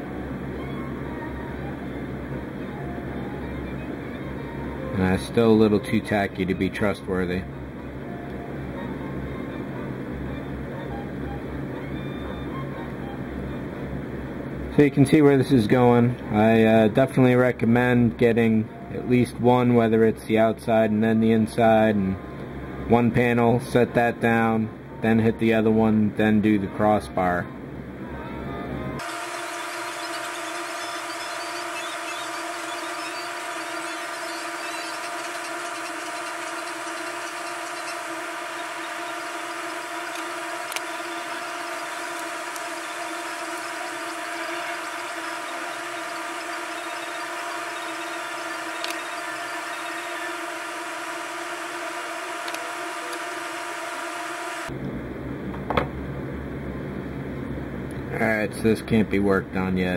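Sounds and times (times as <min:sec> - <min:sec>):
steady whining drone: 0:00.0 - 0:25.9, 0:27.6 - 0:55.6.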